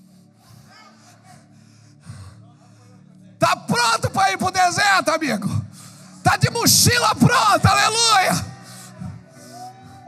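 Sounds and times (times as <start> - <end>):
man breathing into microphone: 5.7 - 6.2.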